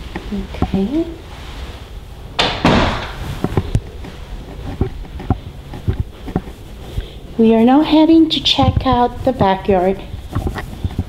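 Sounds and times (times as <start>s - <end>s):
interior door shutting: 2.3s - 3.6s.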